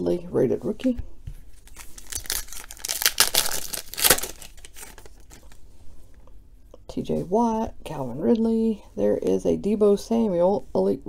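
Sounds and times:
foil wrapper tearing and crinkling: 1.6s - 5.6s.

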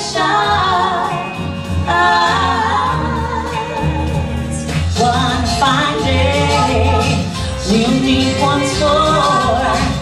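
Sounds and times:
women singing in harmony: 0.0s - 10.0s
low bass line: 0.6s - 10.0s.

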